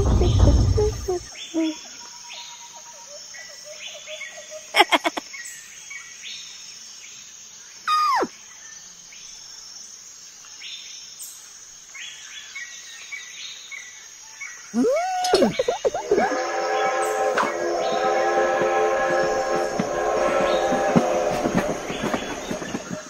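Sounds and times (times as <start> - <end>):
birds chirping: 0.0 - 2.0, 14.7 - 23.0
insects hissing: 0.0 - 23.0
falling whistle: 7.9 - 8.3, 14.8 - 22.1.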